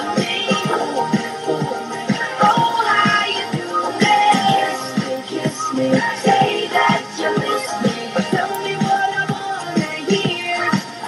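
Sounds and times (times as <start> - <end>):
pop song: 0.0 - 11.0.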